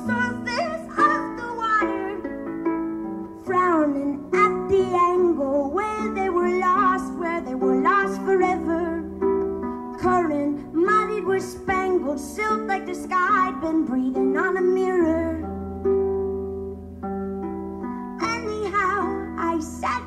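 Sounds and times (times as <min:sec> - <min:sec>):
woman singing: 0:00.0 - 0:02.4, 0:03.4 - 0:09.2, 0:09.9 - 0:15.5, 0:18.2 - 0:20.0
solo harp playing: 0:00.0 - 0:20.0.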